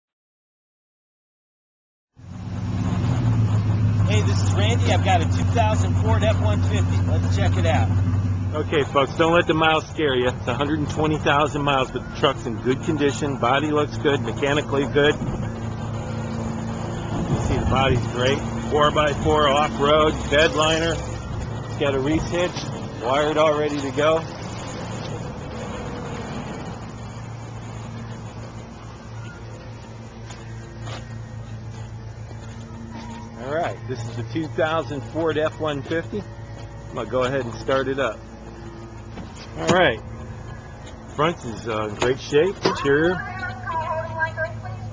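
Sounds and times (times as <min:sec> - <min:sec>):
engine idling: 0:02.3 - 0:44.9.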